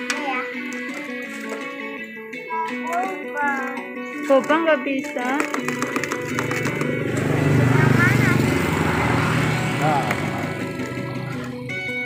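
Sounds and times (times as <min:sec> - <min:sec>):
background music: 0:00.0 - 0:12.0
engine passing by: 0:06.3 - 0:11.8.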